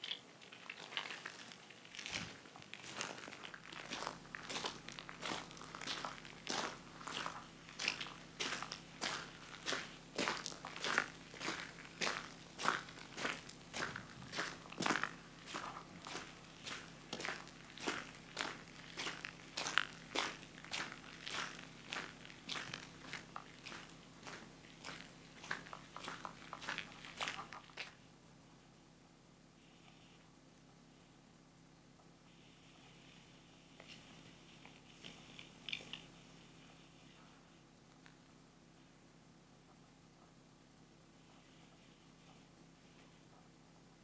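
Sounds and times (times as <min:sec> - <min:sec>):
footsteps crunching on wet gravel: 0:00.0 - 0:28.0.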